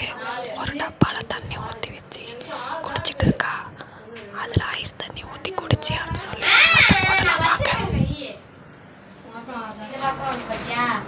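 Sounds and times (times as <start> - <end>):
person whispering: 0.0 - 6.7.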